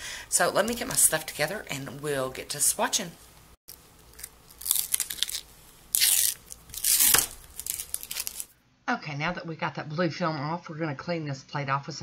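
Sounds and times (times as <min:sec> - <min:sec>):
plastic film peeling off metal: 0:04.1 - 0:08.5.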